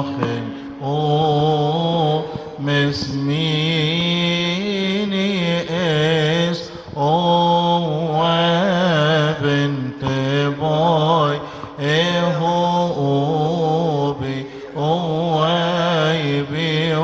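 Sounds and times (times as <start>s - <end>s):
men chanting through microphones: 0.0s - 17.0s.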